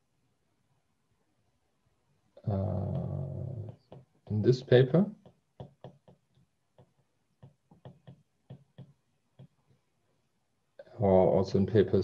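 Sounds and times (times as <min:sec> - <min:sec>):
stylus tapping on tablet screen: 0:03.6 - 0:04.5, 0:05.1 - 0:09.8.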